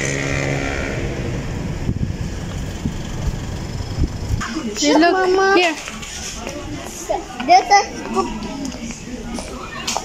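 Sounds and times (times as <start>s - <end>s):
car engine running: 0.0s - 4.4s
traffic rumble: 0.0s - 10.0s.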